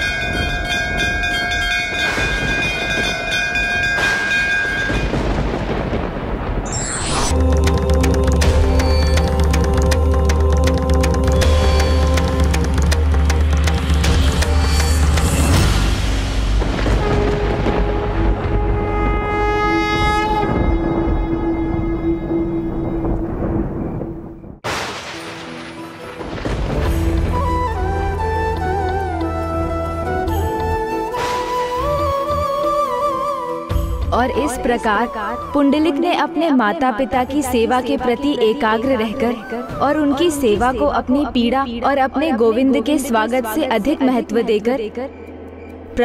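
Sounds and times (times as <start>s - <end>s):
temple bells ringing: 0.0s - 5.3s
horn-like drone: 16.9s - 23.3s.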